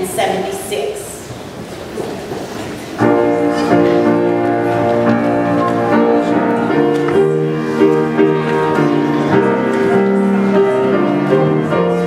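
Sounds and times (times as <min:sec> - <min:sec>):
people shuffling and rustling: 0:00.0 - 0:12.0.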